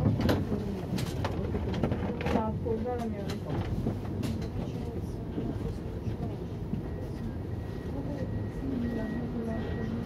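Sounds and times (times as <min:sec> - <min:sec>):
tram rumbling: 0:00.0 - 0:10.0.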